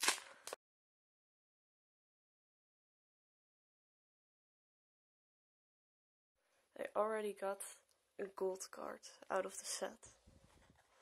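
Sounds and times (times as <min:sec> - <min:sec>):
foil wrapper crinkling and tearing: 0:00.0 - 0:00.6.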